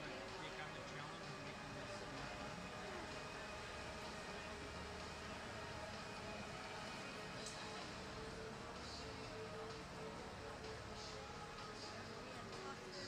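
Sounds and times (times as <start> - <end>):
ice resurfacer humming: 0.0 - 13.0.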